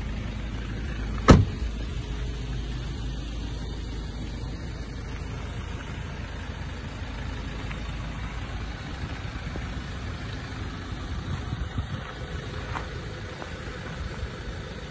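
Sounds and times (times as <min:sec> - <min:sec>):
diesel engine idling: 0:00.0 - 0:14.9.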